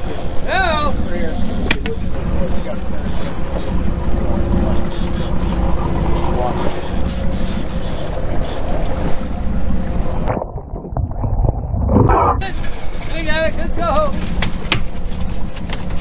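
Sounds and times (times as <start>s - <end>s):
boat engine running: 0.0s - 11.4s, 12.0s - 16.0s.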